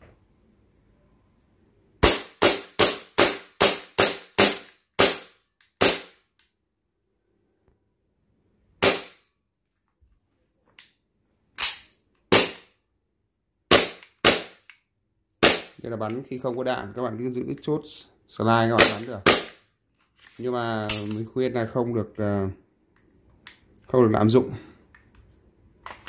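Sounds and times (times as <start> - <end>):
airsoft pistol shots: 2.0 - 6.2, 8.8 - 9.2, 11.6 - 12.7, 13.7 - 14.6, 15.4 - 15.8, 18.8 - 19.6.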